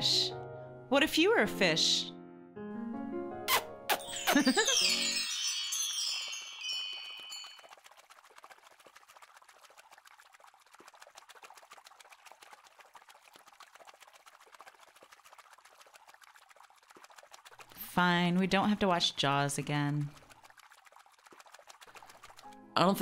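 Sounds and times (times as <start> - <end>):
shimmering chime sound effect: 3.9 - 7.7
faint fizzing crackle: 4.0 - 23.0.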